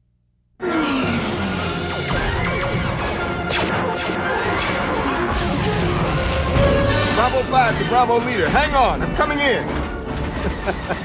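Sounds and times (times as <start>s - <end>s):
action film music: 0.6s - 11.0s.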